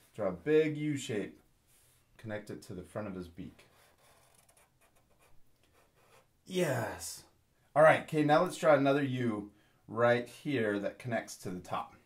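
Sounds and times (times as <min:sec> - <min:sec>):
marker scratching on paper: 0:03.7 - 0:06.3.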